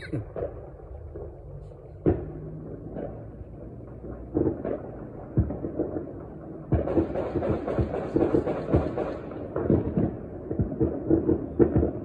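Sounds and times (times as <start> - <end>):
fireworks bangs and pops: 0.0 - 12.0.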